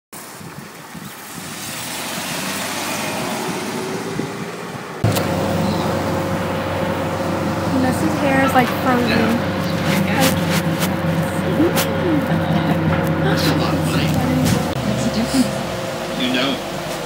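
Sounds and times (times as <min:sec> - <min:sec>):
passing cars: 0:00.4 - 0:17.0
steady low hum: 0:04.2 - 0:17.0.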